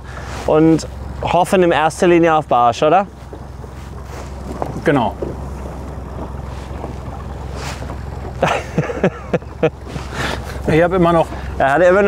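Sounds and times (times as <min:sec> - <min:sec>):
outboard motor humming: 0:00.0 - 0:12.0
water noise: 0:00.0 - 0:12.0
wind on microphone: 0:03.1 - 0:08.5.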